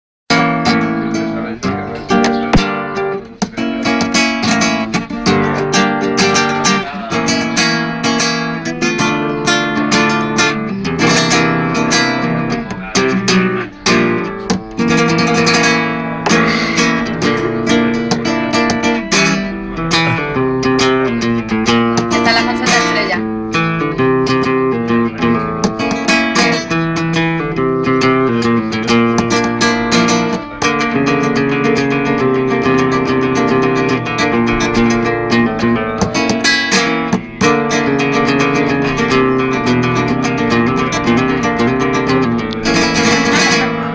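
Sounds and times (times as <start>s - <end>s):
flamenco guitar: 0.3s - 43.9s.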